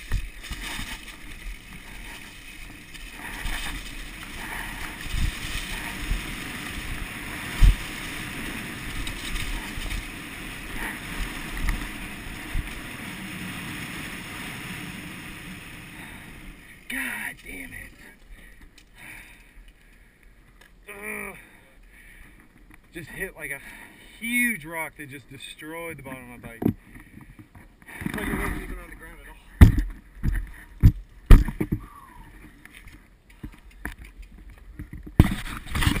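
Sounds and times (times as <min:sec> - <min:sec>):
bike rolling over dirt trail: 0:00.0 - 0:21.3, 0:26.0 - 0:36.0
scraping against microphone: 0:26.6 - 0:36.0
bike knocking over bumps: 0:29.5 - 0:31.9.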